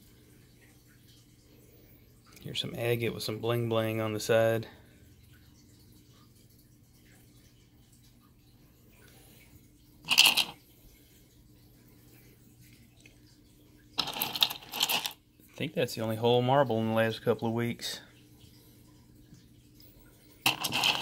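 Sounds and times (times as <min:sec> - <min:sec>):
faint steady hum: 0:00.0 - 0:21.0
stones clattering in ceramic bowl: 0:10.1 - 0:10.6, 0:14.0 - 0:15.2, 0:20.4 - 0:21.0.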